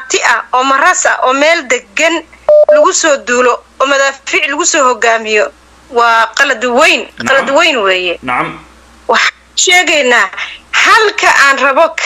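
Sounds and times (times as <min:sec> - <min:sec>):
person talking: 0:05.0 - 0:12.0.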